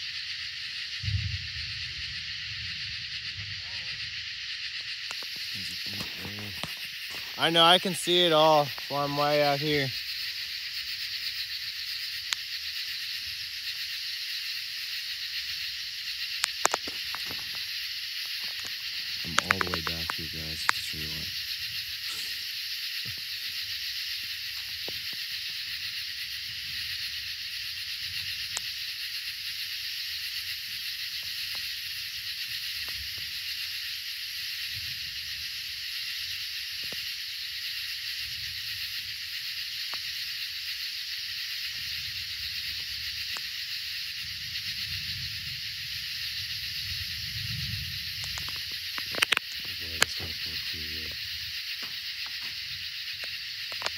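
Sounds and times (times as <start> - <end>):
night insects chorus: 0.0 - 53.9
sharp clicks: 18.5 - 21.0, 48.2 - 50.5.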